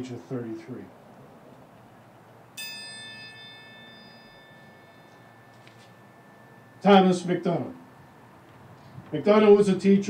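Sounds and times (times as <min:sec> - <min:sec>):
small bell ringing: 0:02.6 - 0:08.2.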